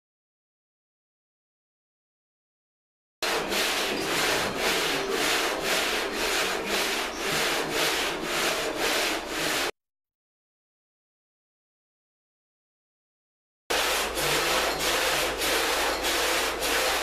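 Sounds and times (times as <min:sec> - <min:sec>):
sandpaper rubbing on metal panel: 0:03.2 - 0:09.7, 0:13.7 - 0:17.0.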